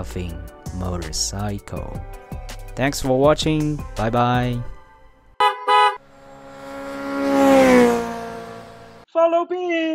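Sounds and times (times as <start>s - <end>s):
horn toots: 5.4s - 9.0s
motor vehicle passing by: 5.4s - 9.0s.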